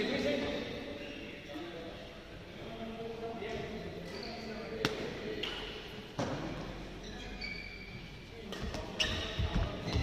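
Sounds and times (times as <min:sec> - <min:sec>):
shoe squeaks on court: 0:04.0 - 0:04.7, 0:07.0 - 0:08.2, 0:08.8 - 0:10.0.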